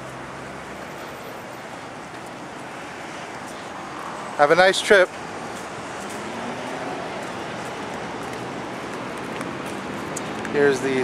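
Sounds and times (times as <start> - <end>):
road traffic hiss: 0.0 - 11.0.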